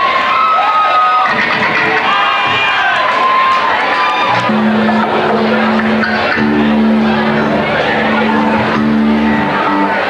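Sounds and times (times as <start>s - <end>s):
distorted electric guitar: 1.1s - 10.0s.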